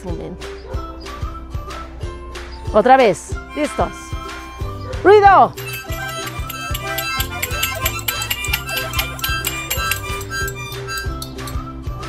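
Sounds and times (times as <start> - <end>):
harmonicas playing: 3.5 - 4.8, 5.4 - 11.6
maracas rattling: 3.5 - 4.8, 5.4 - 11.6
small cymbals: 5.5 - 11.6.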